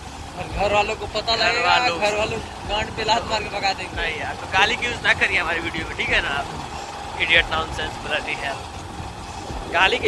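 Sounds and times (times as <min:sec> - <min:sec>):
motorbike rumble: 0:00.0 - 0:10.0
road noise: 0:00.0 - 0:10.0
man speaking: 0:00.4 - 0:06.6, 0:09.7 - 0:10.0.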